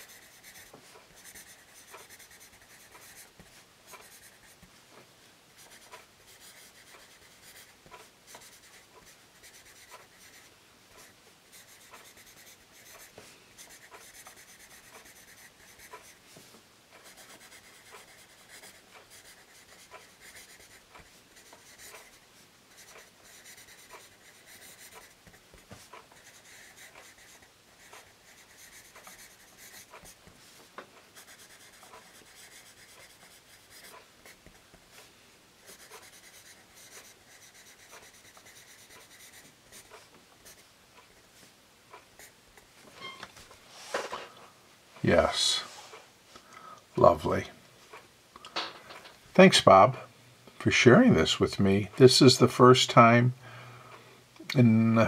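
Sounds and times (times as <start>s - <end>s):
pencil point ticks: 0.0s - 4.7s, 5.6s - 16.2s, 16.9s - 30.3s, 31.1s - 41.2s
pencil scratching on paper: 0.0s - 4.7s, 5.6s - 16.2s, 17.0s - 30.4s, 31.1s - 41.2s.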